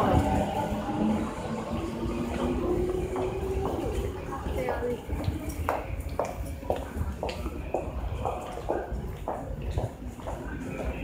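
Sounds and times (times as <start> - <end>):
train hum: 0.0 - 11.0.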